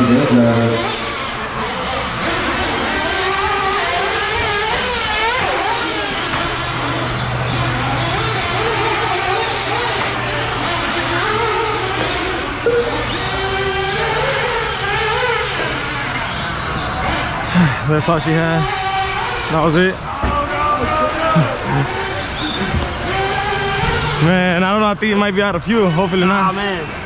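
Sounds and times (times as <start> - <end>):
rc buggy engines buzzing and revving: 0.0 - 27.0.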